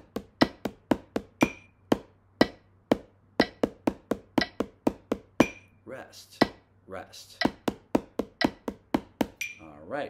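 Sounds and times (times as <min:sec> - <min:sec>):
drumsticks tapping: 0:00.0 - 0:05.7, 0:06.4 - 0:06.6, 0:07.3 - 0:09.6
person counting: 0:00.0 - 0:09.7
metronome clicking: 0:00.3 - 0:03.8, 0:04.4 - 0:04.6, 0:07.4 - 0:07.7, 0:08.3 - 0:09.6.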